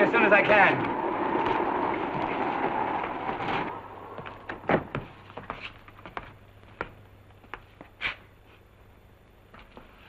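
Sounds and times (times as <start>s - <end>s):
quiet footsteps: 0.4s - 10.0s.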